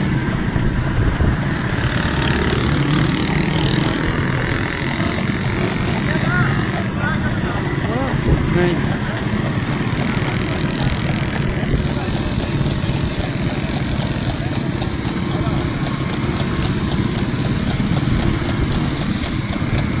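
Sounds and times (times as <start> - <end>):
hooves clip-clopping on pavement: 0.0 - 20.0
motorcycle engines running: 0.0 - 20.0.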